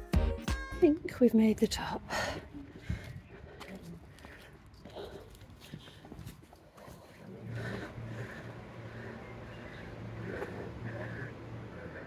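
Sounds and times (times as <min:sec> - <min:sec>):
low steady hum: 0:00.8 - 0:12.0
distant voices: 0:01.7 - 0:12.0
faint footsteps: 0:02.1 - 0:12.0.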